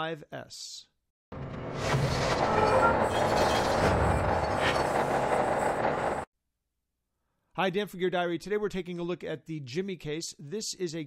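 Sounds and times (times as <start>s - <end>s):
machinery grinding and rumbling: 1.3s - 6.3s.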